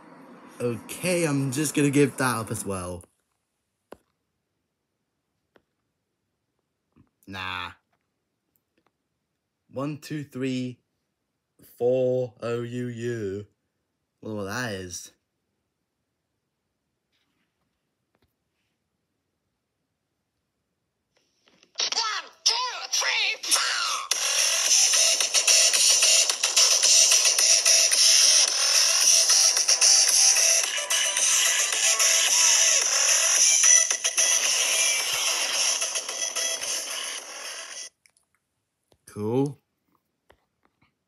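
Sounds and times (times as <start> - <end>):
music with voice from small speaker: 21.8 - 37.9.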